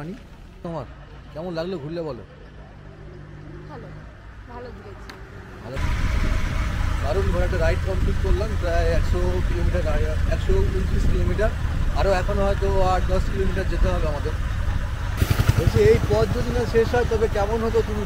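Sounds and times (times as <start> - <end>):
motorcycle engine rumble: 5.0 - 18.0
wind buffeting microphone: 5.8 - 16.8
man talking: 7.0 - 14.4, 15.5 - 18.0.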